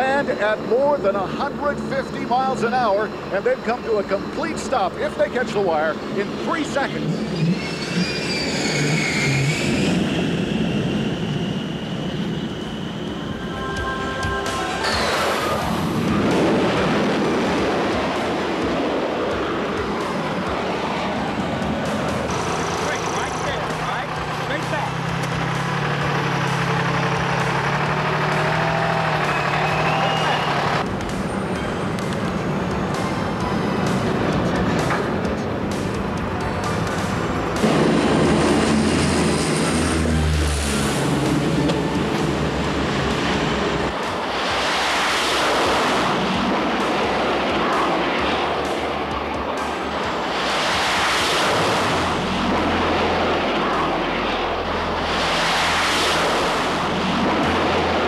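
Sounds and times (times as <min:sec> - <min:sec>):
jet engines roaring: 0:00.0 - 0:58.0
background music: 0:13.1 - 0:58.0.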